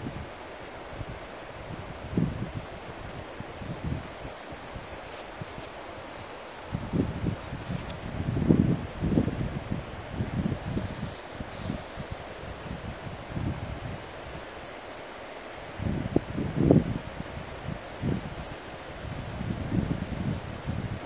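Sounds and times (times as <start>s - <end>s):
wind buffeting microphone: 0.0s - 14.7s, 15.6s - 21.0s.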